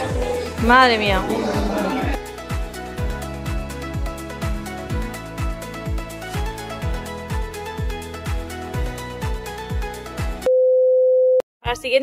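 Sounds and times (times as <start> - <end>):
loud single-pitch test beep: 10.5 - 11.4.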